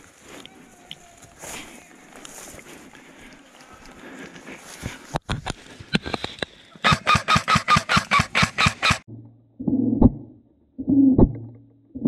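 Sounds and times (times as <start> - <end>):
dry grass rustling: 0.0 - 8.7
airsoft gun firing rapidly: 6.8 - 9.0.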